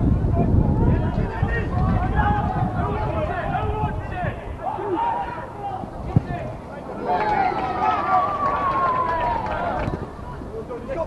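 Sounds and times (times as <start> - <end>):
long drawn-out shout: 0.8 - 5.9, 6.8 - 10.4.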